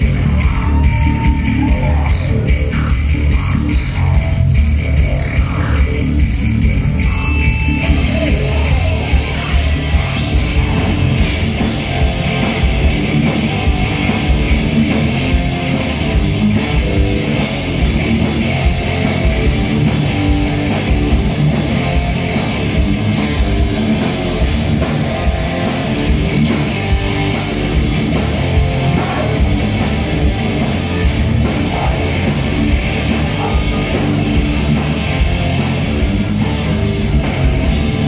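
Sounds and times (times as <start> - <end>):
bass guitar: 0.0 - 38.0
distorted electric guitars: 0.0 - 38.0.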